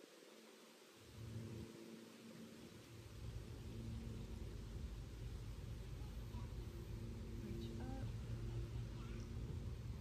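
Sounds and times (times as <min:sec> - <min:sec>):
faint low rumble: 0:00.3 - 0:10.0.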